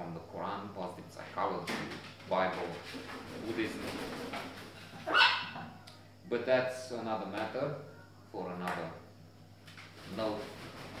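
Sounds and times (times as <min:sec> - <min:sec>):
parrot squawking: 0:05.0 - 0:05.7.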